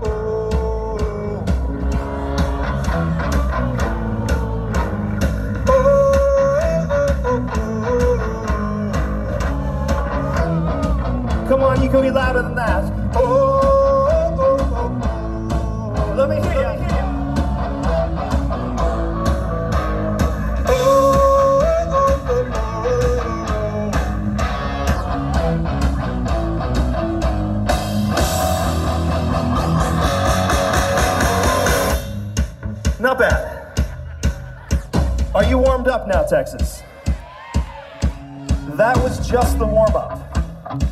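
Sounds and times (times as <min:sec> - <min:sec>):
singalong melody: 0:00.0 - 0:32.2
rock band playing loud: 0:00.0 - 0:40.9.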